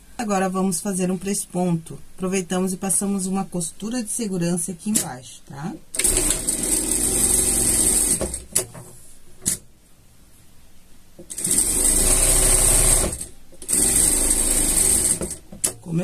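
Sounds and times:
sewing machine running: 0:06.0 - 0:08.4, 0:11.3 - 0:15.4.

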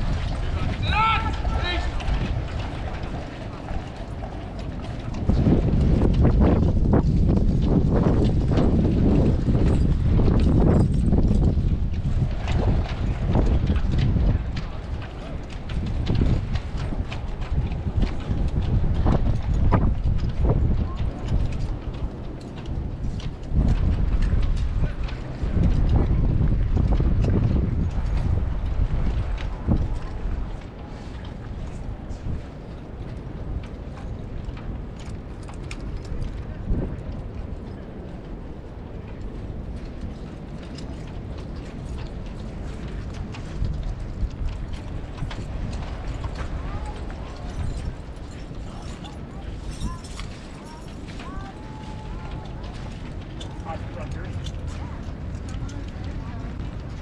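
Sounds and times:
horse hooves clip-clopping on gravel: 0:00.0 - 0:57.0.

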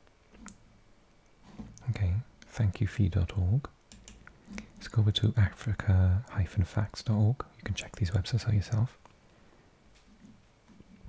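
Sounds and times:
man's low voice: 0:01.8 - 0:03.7, 0:04.8 - 0:09.0
computer mouse click: 0:03.9 - 0:04.2.

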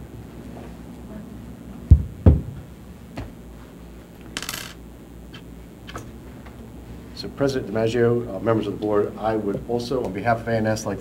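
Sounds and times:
heavy thumps near microphone: 0:01.9 - 0:03.4.

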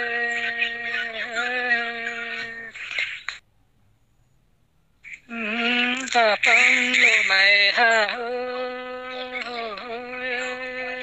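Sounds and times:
person singing a long nasal note: 0:00.0 - 0:02.8, 0:05.3 - 0:11.0.

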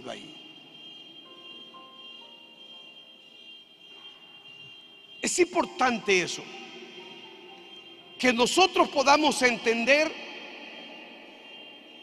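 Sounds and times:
faint high-pitched tone: 0:00.0 - 0:12.0.

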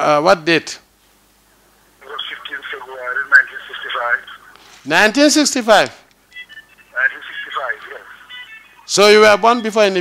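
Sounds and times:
man speaking over telephone: 0:02.0 - 0:10.0.

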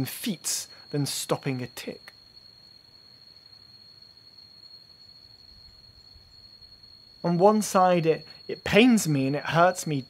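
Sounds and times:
faint high-pitched whine: 0:00.0 - 0:10.0
low background hiss: 0:00.0 - 0:10.0.

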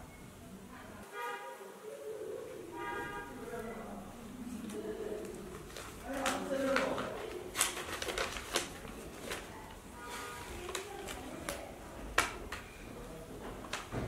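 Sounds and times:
paper rustling: 0:04.5 - 0:12.7.

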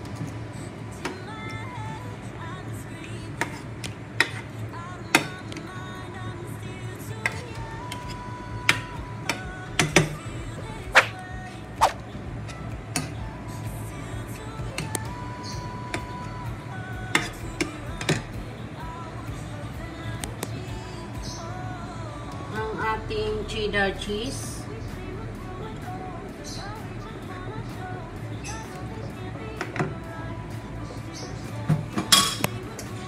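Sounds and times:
background music: 0:00.0 - 0:33.0.

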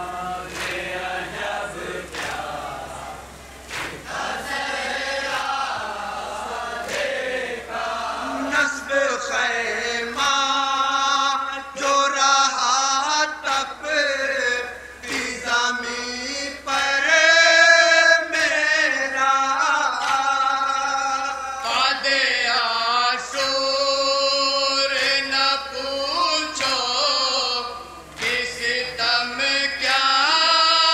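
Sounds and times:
men chanting a lament: 0:00.0 - 0:30.9.

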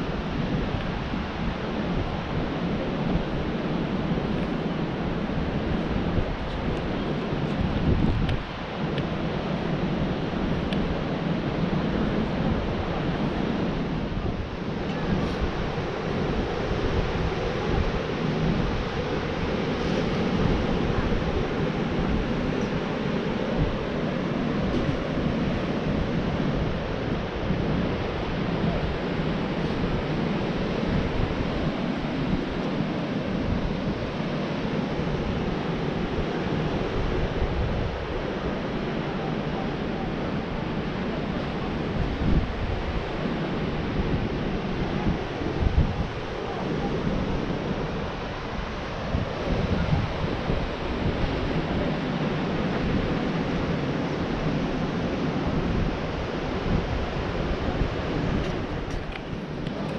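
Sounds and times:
surf breaking on beach: 0:00.0 - 0:59.9
wind rushing over microphone: 0:00.0 - 0:59.9.

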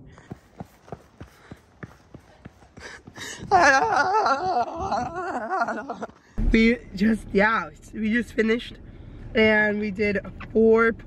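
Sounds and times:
quick footsteps on dirt: 0:00.0 - 0:06.4.

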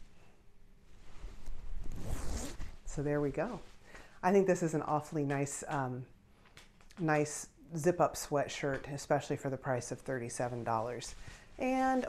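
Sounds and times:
fabric rustling on microphone: 0:00.0 - 0:04.5, 0:10.1 - 0:12.0
zipper being worked: 0:01.4 - 0:02.8.

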